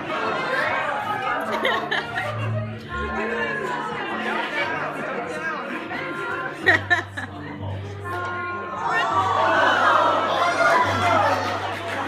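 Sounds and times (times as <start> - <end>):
people chattering excitedly: 0.0 - 12.0.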